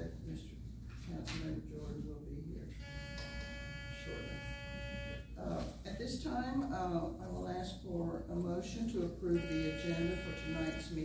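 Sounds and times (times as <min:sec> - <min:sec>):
steady electronic buzz: 0:02.8 - 0:05.5, 0:09.3 - 0:11.0.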